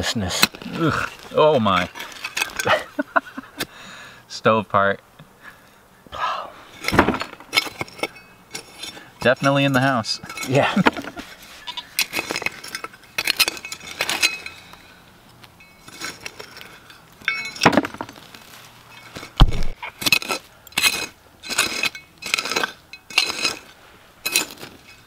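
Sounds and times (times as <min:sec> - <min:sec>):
trowel scraping stony soil: 0:00.0 - 0:03.7, 0:06.6 - 0:25.0
metallic clinks: 0:06.8 - 0:18.1, 0:18.8 - 0:19.4
dull thump: 0:06.9 - 0:07.4, 0:19.4 - 0:19.8.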